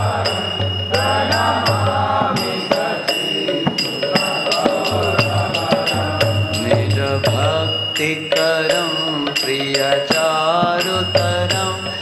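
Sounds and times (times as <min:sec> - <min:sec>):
hand cymbals struck: 0:00.0 - 0:12.0
man singing a prayer: 0:00.0 - 0:12.0.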